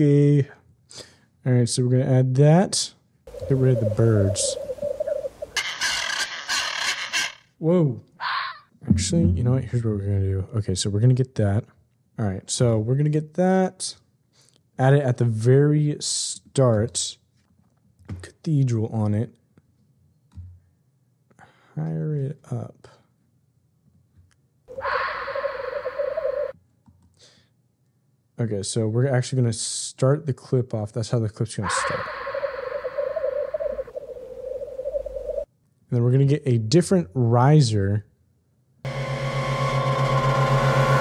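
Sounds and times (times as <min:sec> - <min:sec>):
macaw squawking: 0:03.3 - 0:07.4, 0:24.7 - 0:26.5, 0:31.6 - 0:35.4
owl screech: 0:03.3 - 0:07.5, 0:08.2 - 0:08.7, 0:24.7 - 0:26.6, 0:31.6 - 0:35.5.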